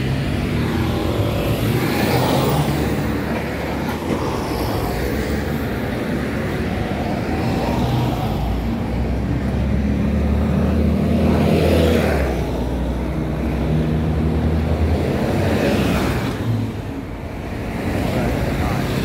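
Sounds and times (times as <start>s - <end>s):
street traffic noise: 0.0s - 19.0s.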